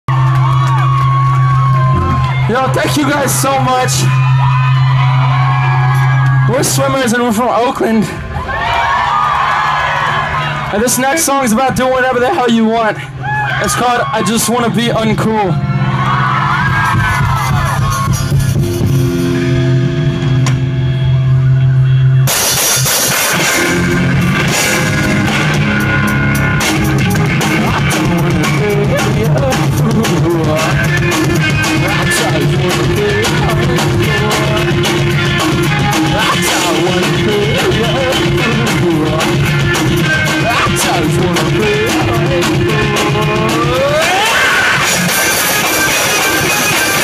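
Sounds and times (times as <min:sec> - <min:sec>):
drums: 0:00.1 - 0:47.0
electric guitars and bass chords: 0:00.1 - 0:47.0.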